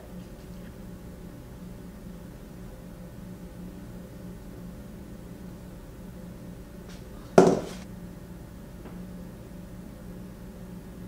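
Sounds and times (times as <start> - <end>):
steady low hum: 0.0 - 11.0
hard object clacking: 7.4 - 7.8.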